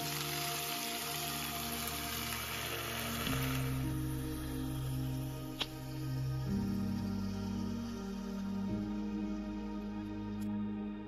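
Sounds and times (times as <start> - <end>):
food sizzling in a skillet: 0.0 - 8.4
background music with held notes: 0.0 - 11.0.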